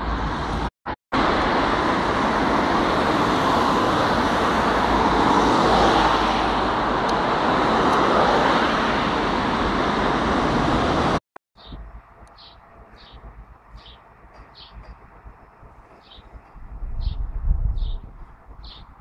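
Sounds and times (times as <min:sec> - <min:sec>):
loud vehicle noise: 0:00.0 - 0:17.5.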